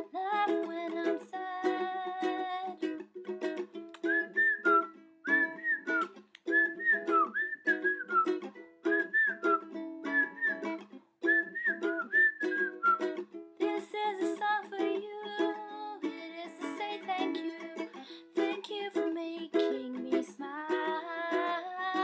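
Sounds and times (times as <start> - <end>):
ukulele strumming: 0.0 - 22.0
person whistling a melody: 4.0 - 13.2.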